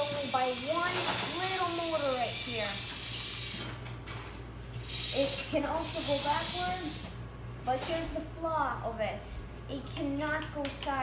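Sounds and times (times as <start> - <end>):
robot motor and gears humming: 0.0 - 3.7, 4.8 - 7.2.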